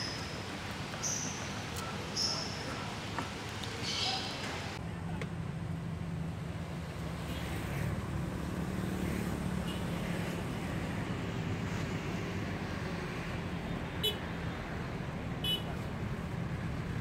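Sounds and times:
road traffic rumble: 0.0 - 17.0.

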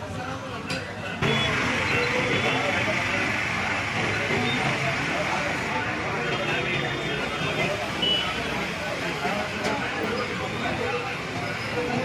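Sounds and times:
people's voices: 0.0 - 12.0
road traffic passing: 1.2 - 12.0.

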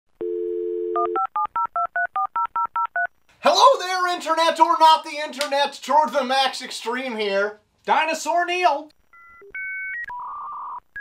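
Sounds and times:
telephone dial tone: 0.2 - 3.1.

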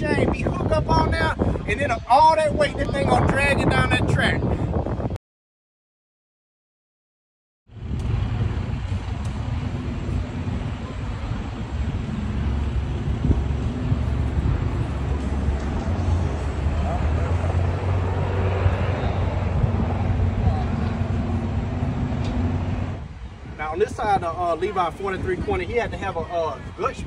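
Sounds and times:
faint voices: 8.2 - 22.9.

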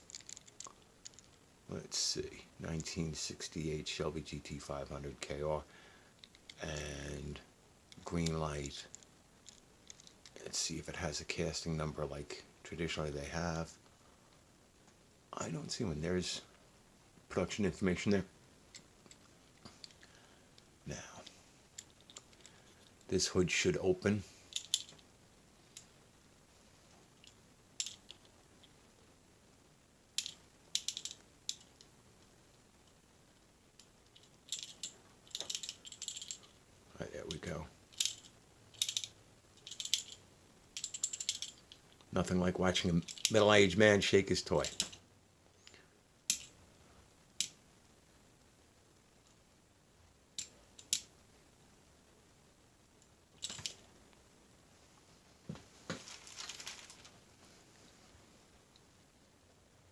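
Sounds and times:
small rattles: 0.0 - 1.5, 7.9 - 10.4, 18.7 - 23.2, 24.3 - 26.0, 27.0 - 28.9, 30.1 - 36.6, 37.2 - 42.1, 43.0 - 43.6, 44.6 - 46.6, 50.3 - 51.2, 52.9 - 54.0, 55.9 - 57.2
toy car clicking: 30.2 - 31.7, 38.0 - 40.2, 40.8 - 41.8.

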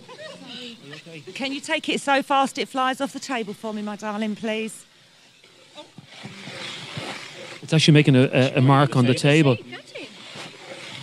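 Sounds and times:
wooden planchette scraping on wood: 5.2 - 11.0.

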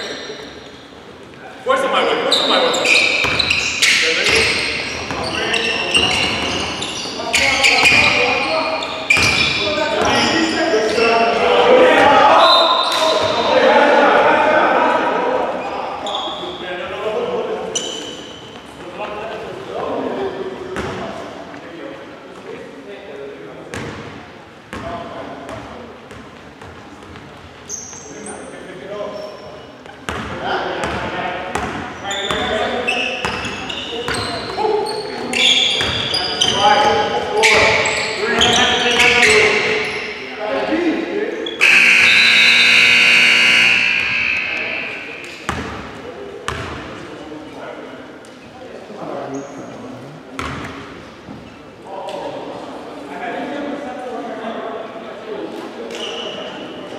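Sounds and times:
sneakers squeaking: 0.0 - 1.2, 1.8 - 13.5, 15.6 - 16.6, 17.6 - 18.9, 20.8 - 21.0, 23.7 - 24.9, 25.5 - 40.4, 41.3 - 46.9, 50.4 - 51.7, 55.9 - 56.9
players calling out: 1.8 - 16.5, 32.1 - 40.6, 41.4 - 45.8
loud steady tone: 41.6 - 45.3.

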